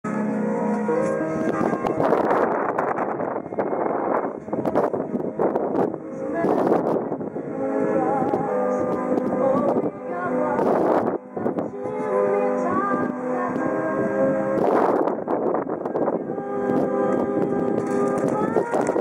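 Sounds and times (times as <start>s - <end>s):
music with long held notes: 0.1s - 19.0s.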